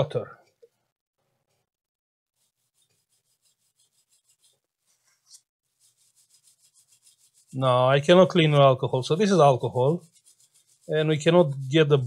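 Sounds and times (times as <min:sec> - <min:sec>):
swab rubbing on circuit board: 0:02.3 - 0:12.0.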